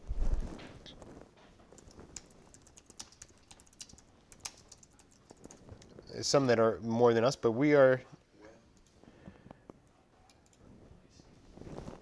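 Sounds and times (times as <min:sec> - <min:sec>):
faint computer keyboard typing: 0:01.6 - 0:06.1, 0:09.8 - 0:10.7.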